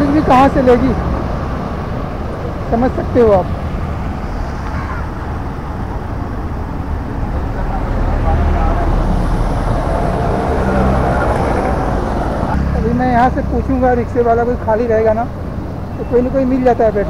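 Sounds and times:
road traffic rumble: 0:00.0 - 0:17.0
faint voices: 0:04.3 - 0:06.0.

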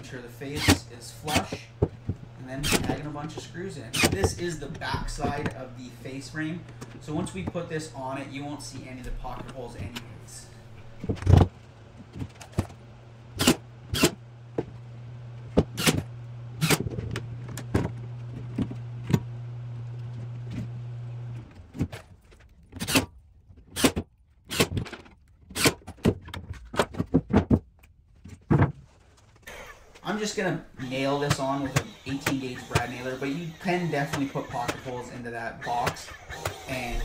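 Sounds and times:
steady low hum: 0:00.0 - 0:22.3, 0:29.4 - 0:37.0.

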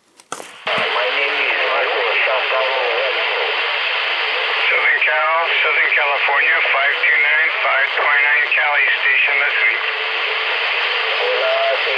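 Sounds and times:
radio static hiss: 0:00.4 - 0:11.9
faint garbled radio voice: 0:00.7 - 0:11.9.

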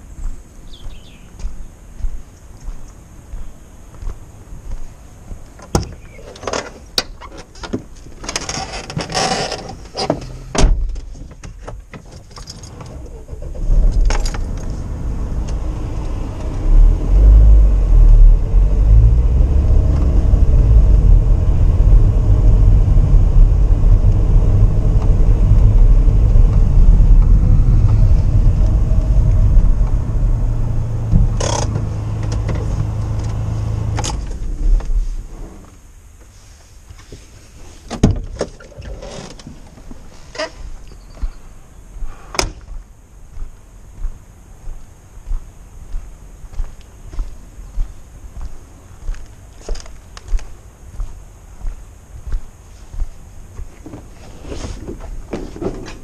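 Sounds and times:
engine and road rumble: 0:00.0 - 0:56.0.

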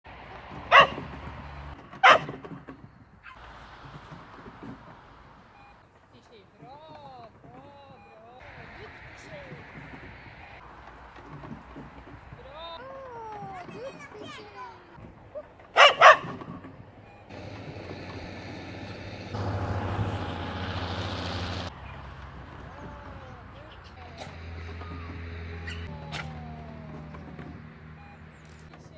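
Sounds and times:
dog barking: 0:00.7 - 0:01.0, 0:02.0 - 0:02.4, 0:15.4 - 0:16.4.

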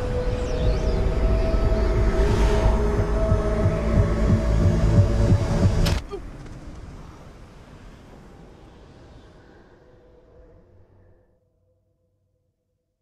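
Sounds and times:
low throbbing pulse: 0:00.0 - 0:06.0
tense film score: 0:00.0 - 0:13.0.

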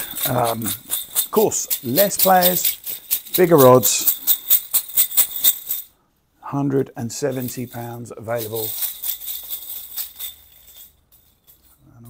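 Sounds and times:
balls rattling in a cloth bag: 0:00.0 - 0:05.9, 0:07.3 - 0:12.0.

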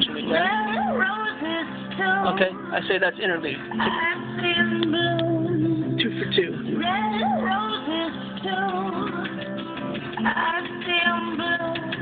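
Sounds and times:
guitar: 0:00.0 - 0:12.0
person singing wavering melody: 0:00.2 - 0:02.7, 0:06.7 - 0:09.4.

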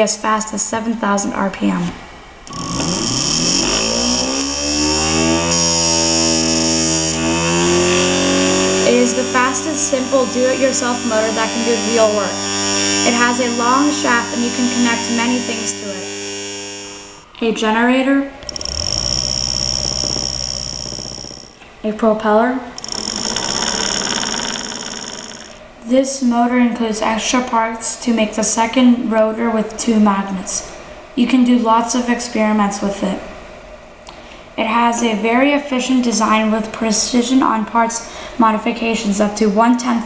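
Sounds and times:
electric motor buzzing whine: 0:02.5 - 0:17.3, 0:18.4 - 0:21.6, 0:22.8 - 0:25.6
person speaking: 0:08.8 - 0:12.4, 0:13.0 - 0:16.1.

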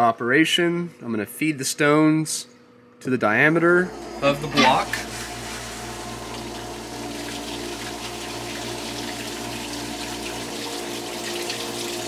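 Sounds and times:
machine motor hum: 0:03.4 - 0:12.0
oil pouring and splashing: 0:05.0 - 0:12.0.

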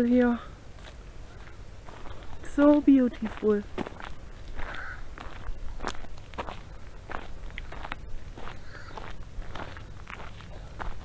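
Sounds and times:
footsteps walking outdoors: 0:00.0 - 0:11.0.

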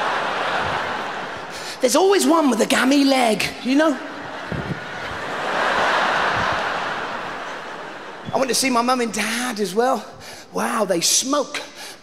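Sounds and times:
large audience laughing: 0:00.0 - 0:02.2, 0:03.8 - 0:08.8.

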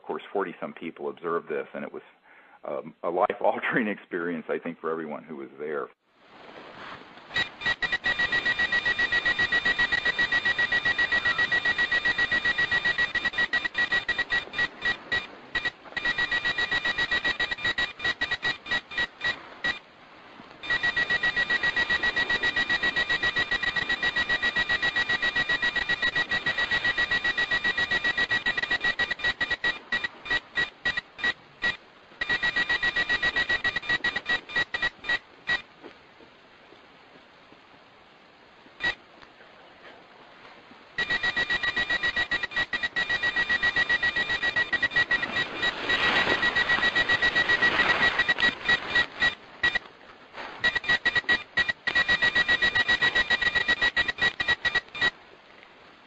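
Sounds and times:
high electronic alert beeps: 0:07.4 - 0:19.8, 0:20.6 - 0:35.6, 0:41.0 - 0:49.8, 0:50.6 - 0:55.1.

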